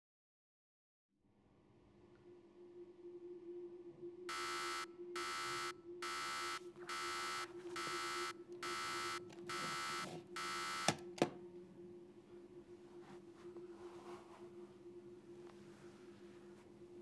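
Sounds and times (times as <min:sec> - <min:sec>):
clock-radio alarm buzzing: 0:04.3 - 0:11.0.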